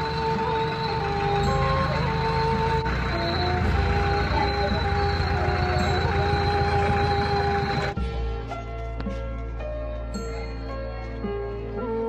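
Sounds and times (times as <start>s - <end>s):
crane engine rumble: 0.0s - 8.0s
steady whine: 0.0s - 8.0s.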